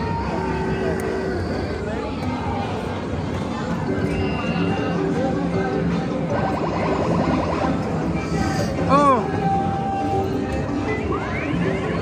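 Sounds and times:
beeping arcade tune: 0:06.3 - 0:08.1
rapidly repeated beeps: 0:06.3 - 0:08.1.

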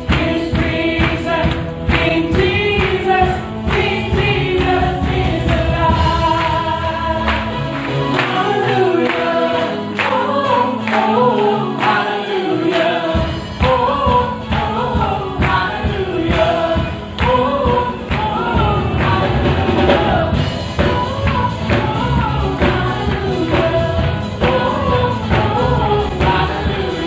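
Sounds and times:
band with guitars keyboard drums: 0:00.0 - 0:27.0
group singing in harmony: 0:00.0 - 0:27.0.

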